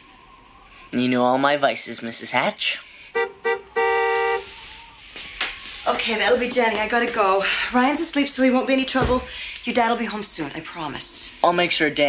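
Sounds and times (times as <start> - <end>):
car horn honking: 3.1 - 4.6.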